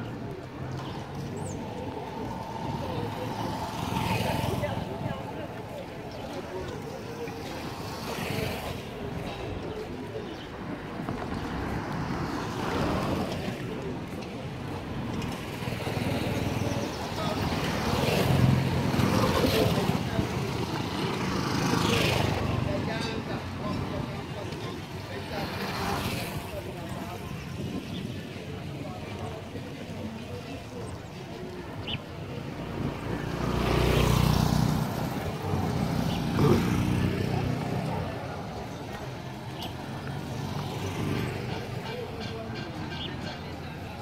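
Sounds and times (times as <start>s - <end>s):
people's voices: 0.0s - 44.0s
traffic noise: 0.0s - 44.0s
small motorcycles passing: 0.3s - 9.2s, 15.2s - 29.6s, 31.4s - 42.5s.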